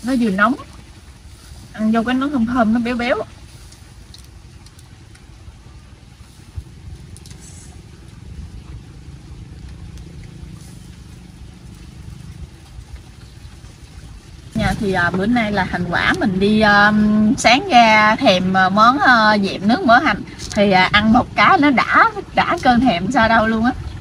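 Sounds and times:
low steady rumble: 0:00.0 - 0:24.0.

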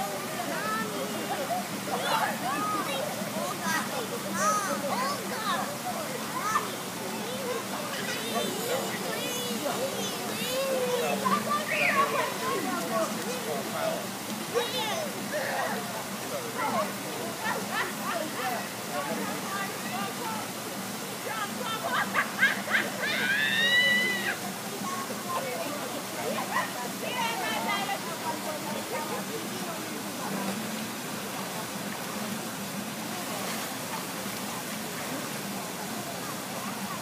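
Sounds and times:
water noise: 0:00.0 - 0:37.0
children shouting: 0:07.3 - 0:12.9, 0:22.4 - 0:24.4.

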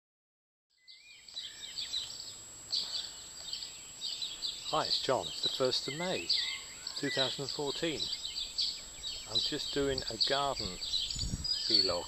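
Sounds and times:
birds chirping and singing: 0:00.8 - 0:12.0.

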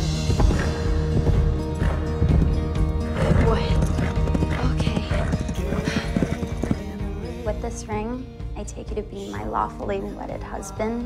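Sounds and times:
horse hoofbeats: 0:00.0 - 0:07.2
background song: 0:00.0 - 0:11.0.

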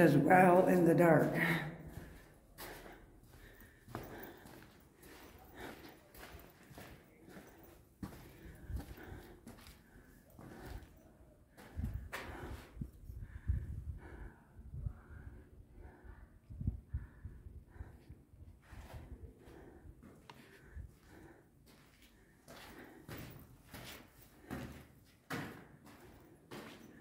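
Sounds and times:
footsteps on stone floor: 0:00.0 - 0:12.7, 0:18.7 - 0:27.0.

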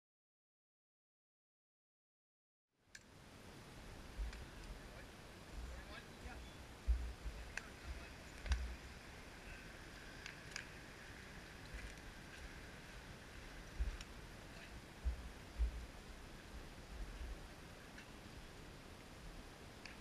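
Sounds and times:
faint distant voices: 0:04.0 - 0:18.7
low rumbling thumps: 0:06.8 - 0:08.8, 0:15.0 - 0:16.0
light clicks: 0:07.5 - 0:07.7, 0:10.2 - 0:10.8, 0:19.8 - 0:20.0.

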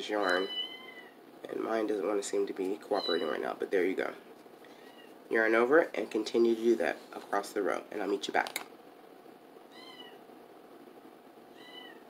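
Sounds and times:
cat meowing faintly: 0:11.6 - 0:12.0.

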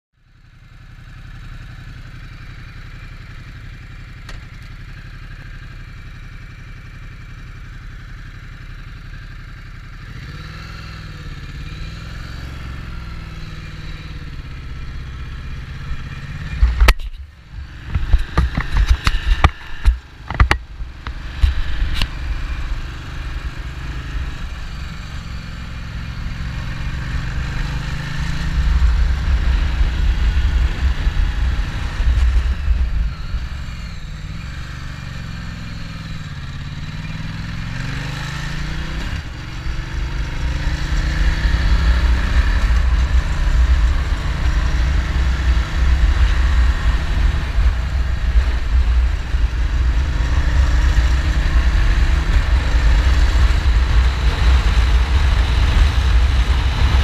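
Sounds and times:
motorcycle engine running: 0:00.2 - 0:57.0.

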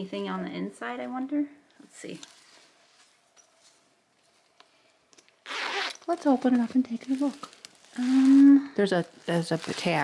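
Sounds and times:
zipper pulled open: 0:05.4 - 0:06.1.

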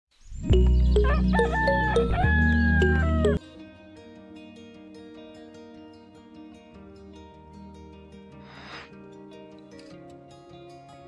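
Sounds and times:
soft plucked guitar music: 0:00.4 - 0:11.0.

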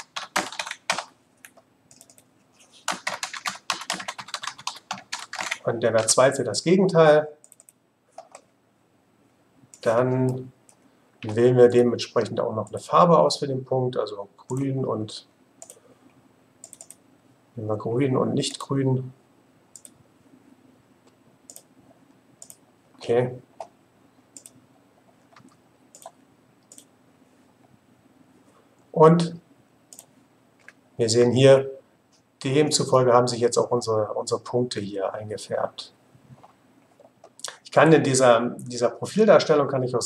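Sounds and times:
computer keyboard typing: 0:00.0 - 0:06.2, 0:07.4 - 0:08.5, 0:15.6 - 0:15.8, 0:16.6 - 0:17.0, 0:24.4 - 0:24.6, 0:25.3 - 0:26.9.

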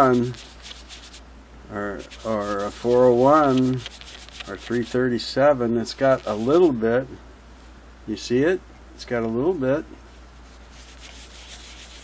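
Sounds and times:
cloth rubbing on painted metal: 0:00.0 - 0:01.2, 0:01.9 - 0:05.3, 0:05.9 - 0:06.8, 0:10.4 - 0:12.0.

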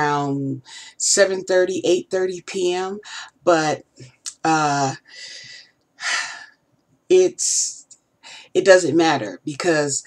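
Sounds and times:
woman breathing: 0:00.6 - 0:01.0, 0:05.0 - 0:06.6, 0:08.2 - 0:08.6.

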